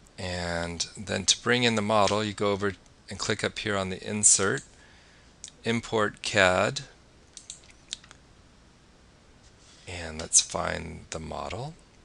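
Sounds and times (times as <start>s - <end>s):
computer mouse clicks: 7.4s - 8.2s.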